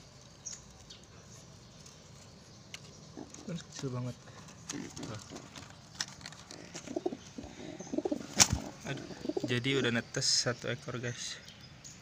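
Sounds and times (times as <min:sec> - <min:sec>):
pigeon wings stirring: 0:02.9 - 0:09.4
pigeons cooing: 0:03.1 - 0:03.8, 0:04.6 - 0:09.8
sharp slap: 0:08.3 - 0:08.6.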